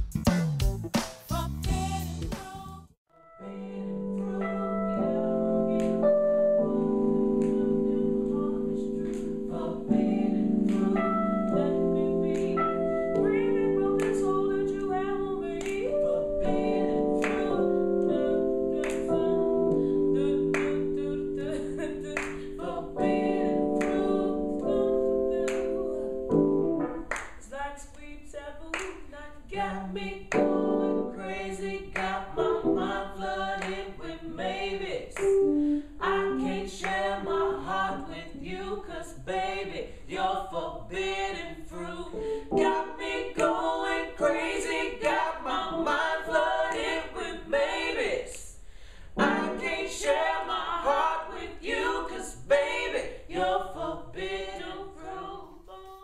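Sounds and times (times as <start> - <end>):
voices singing a cappella: 1.3 - 26.5, 27.3 - 56.0
sharp hand claps: 27.1 - 27.4.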